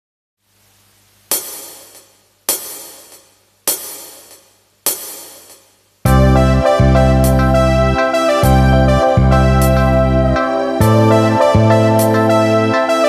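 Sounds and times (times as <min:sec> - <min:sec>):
cymbal strikes ringing: 0:01.3 - 0:05.7.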